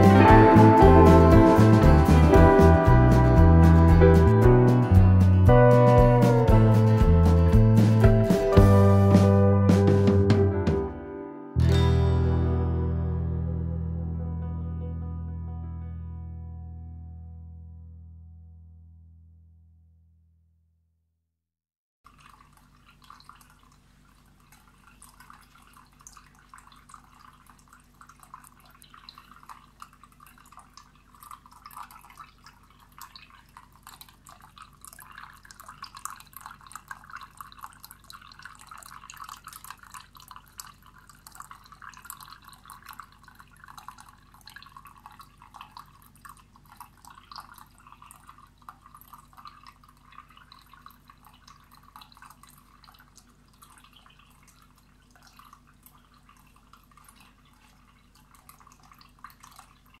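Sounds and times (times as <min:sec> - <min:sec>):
fountain water trickling: 0:22.1 - 1:00.0.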